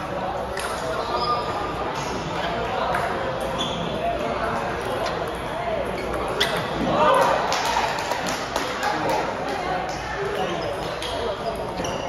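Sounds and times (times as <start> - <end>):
voices in echoing hall: 0.0 - 12.0.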